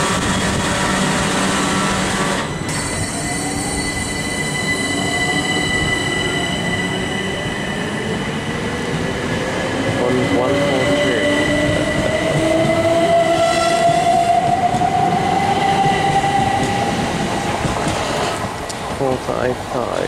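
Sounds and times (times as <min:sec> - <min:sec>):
electric train traction whine: 0:00.0 - 0:19.2
wheels rumbling on rail: 0:00.0 - 0:20.0.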